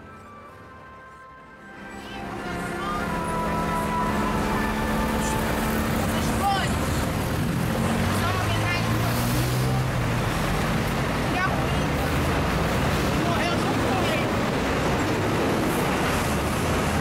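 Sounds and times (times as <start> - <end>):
heavy vehicle engine hum: 0.0 - 17.0
highway traffic noise: 0.0 - 17.0
people's voices: 1.8 - 15.2.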